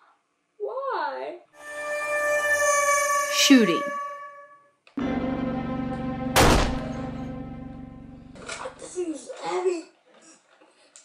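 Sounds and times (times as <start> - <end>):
voice: 3.3 - 4.0
sustained music chord: 5.0 - 9.0
loud gunshot bang: 6.4 - 7.0.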